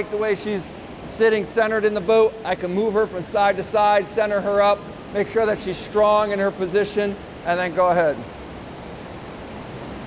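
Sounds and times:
rushing water in a tank: 0:00.0 - 0:10.0.

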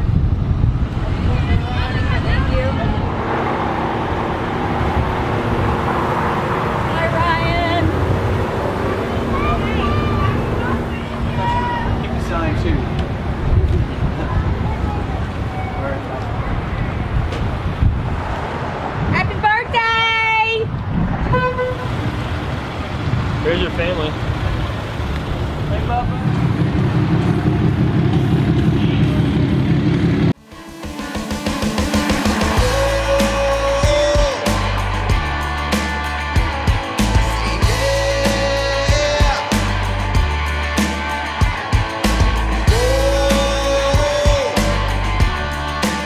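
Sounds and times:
car engines rumbling: 0:00.0 - 0:30.4
voices calling out: 0:01.1 - 0:17.3
car horn honking: 0:21.2 - 0:22.0.

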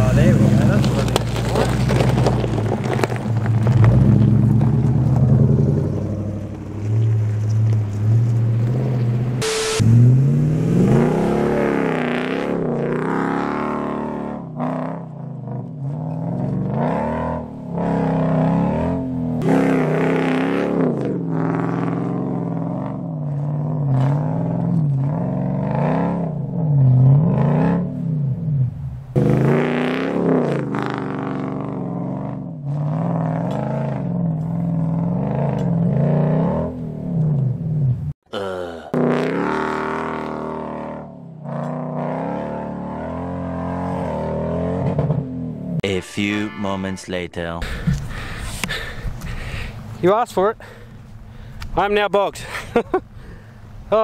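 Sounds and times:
engine revving up and down: 0:08.6 - 0:38.0, 0:38.9 - 0:46.6.

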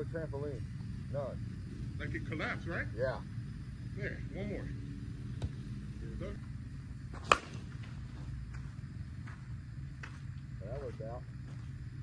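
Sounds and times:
softball bat cracking a ball: 0:07.1 - 0:08.0.

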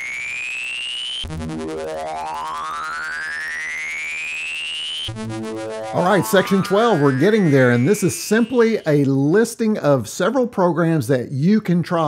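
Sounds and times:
low buzzing pulse: 0:00.0 - 0:08.7
synthesized tone gliding upward: 0:00.0 - 0:09.1.

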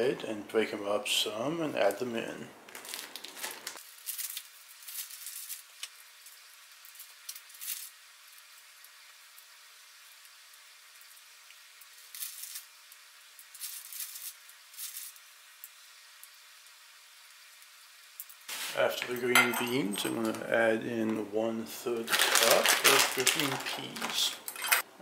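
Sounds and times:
faint steady hiss: 0:00.0 - 0:25.0
plastic bag crinkling: 0:02.6 - 0:05.9, 0:13.5 - 0:15.2, 0:18.5 - 0:20.4, 0:21.9 - 0:24.8
green beans crackling being broken: 0:02.7 - 0:09.0, 0:11.5 - 0:15.7, 0:22.0 - 0:24.6.

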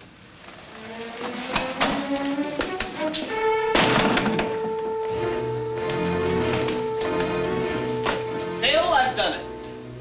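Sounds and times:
orchestral film score: 0:00.6 - 0:10.0
sharp accented orchestral hits: 0:03.0 - 0:10.0.

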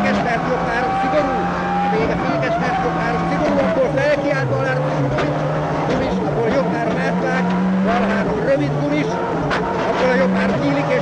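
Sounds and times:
rally car engine at high revs: 0:00.0 - 0:11.0.

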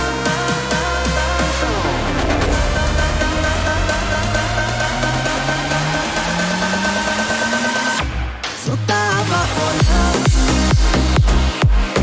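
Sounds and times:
steady high tone: 0:00.7 - 0:08.0
rising low synth tone: 0:00.9 - 0:08.2.

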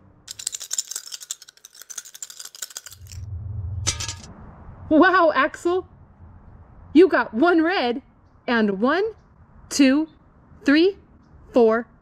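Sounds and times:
plastic counters rattling: 0:00.2 - 0:03.2
low hum: 0:02.6 - 0:07.4.

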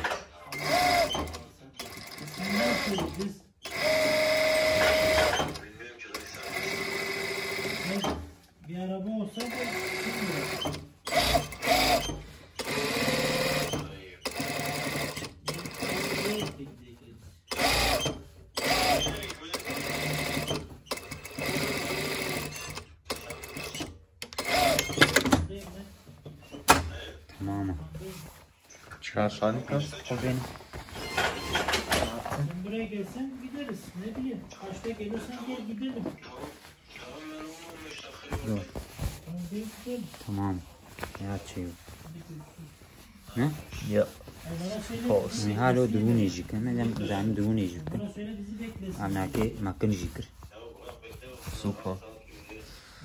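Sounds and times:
sewing machine stitching: 0:00.0 - 0:08.3, 0:09.4 - 0:16.6, 0:17.5 - 0:25.4, 0:31.0 - 0:32.2.

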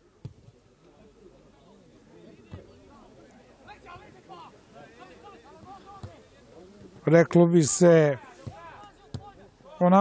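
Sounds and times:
distant players shouting: 0:03.5 - 0:06.4, 0:08.0 - 0:10.0.

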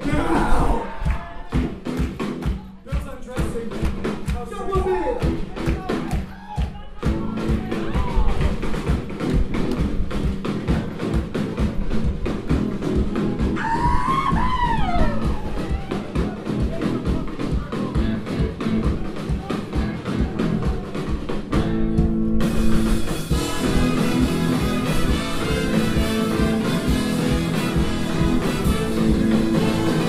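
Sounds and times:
bass: 0:00.0 - 0:30.0
drum kit fast beat: 0:00.0 - 0:30.0
guitar: 0:00.0 - 0:30.0
horn section: 0:23.1 - 0:30.0.

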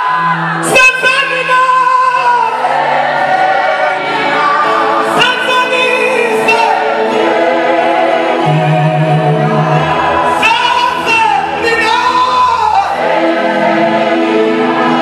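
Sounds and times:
choir singing with accompaniment: 0:00.0 - 0:00.8, 0:02.2 - 0:15.0.

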